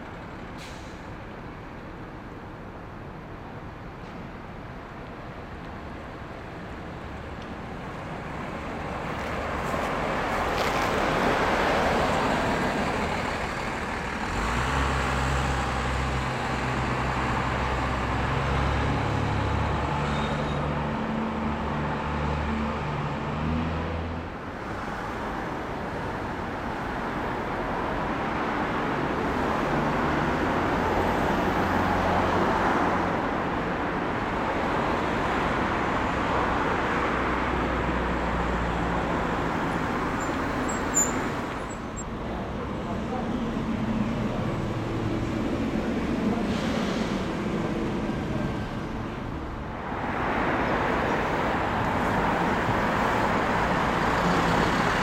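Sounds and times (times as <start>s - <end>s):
street traffic noise: 0.0s - 55.0s
diesel bus engine pulling away: 0.2s - 2.0s, 7.9s - 55.0s.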